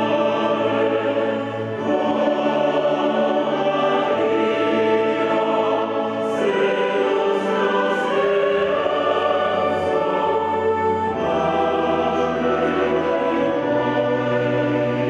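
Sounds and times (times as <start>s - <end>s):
mixed choir singing sacred music: 0.0s - 15.0s
orchestra of strings and woodwinds: 0.0s - 15.0s.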